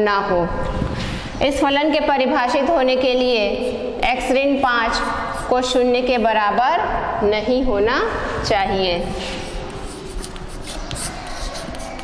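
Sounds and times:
scratchy rustling of handwriting: 3.1s - 6.2s, 9.1s - 12.0s.

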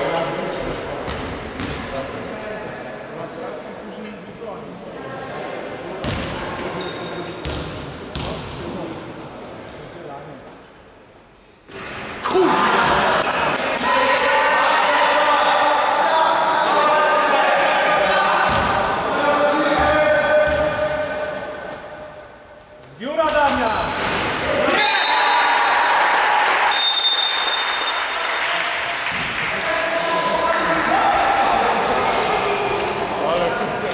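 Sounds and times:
basketball bouncing on gym floor: 7.4s - 8.4s, 19.8s - 21.0s
crowd shouting and cheering: 12.2s - 21.6s, 24.2s - 33.9s.

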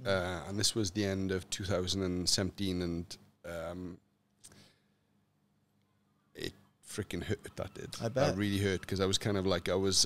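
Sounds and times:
man speaking: 6.4s - 10.0s.

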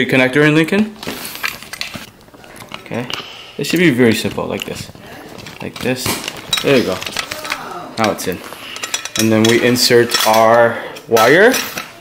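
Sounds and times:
metal box clinking and rattling: 4.4s - 10.5s.

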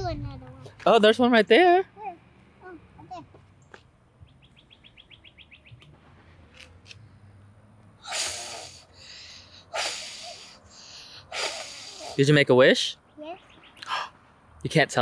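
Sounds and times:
bird chirping trill: 3.6s - 5.9s, 12.9s - 13.9s
child blowing breathy puffs: 8.0s - 12.2s.

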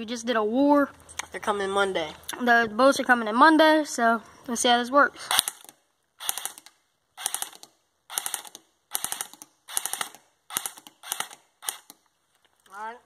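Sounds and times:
airsoft gun full-auto bursts: 5.3s - 12.0s.

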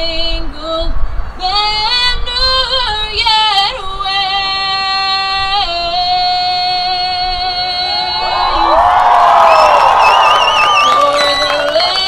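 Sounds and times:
woman singing anthem through pa: 0.0s - 8.8s, 11.1s - 12.0s.

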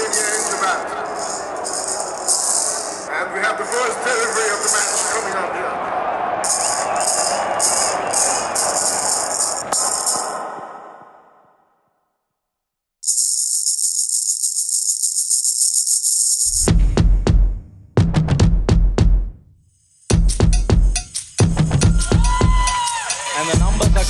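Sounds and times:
ball with bearings rattling: 0.0s - 5.4s, 6.4s - 10.4s, 13.0s - 16.7s
murmur of voices: 0.0s - 9.6s.

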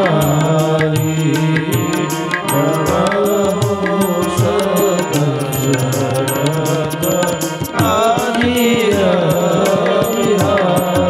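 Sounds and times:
devotional chant singing: 0.0s - 11.0s
drum beats: 0.0s - 11.0s
held drone: 0.0s - 11.0s.

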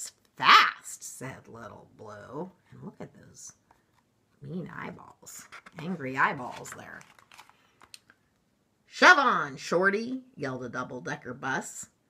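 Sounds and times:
paper page rustling: 5.0s - 8.0s.

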